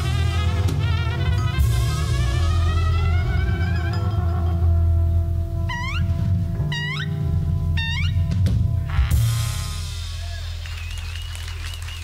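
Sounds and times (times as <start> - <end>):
horn note with vibrato: 0.0 - 4.4, 5.6 - 10.6
trumpet bent high notes: 0.0 - 10.7.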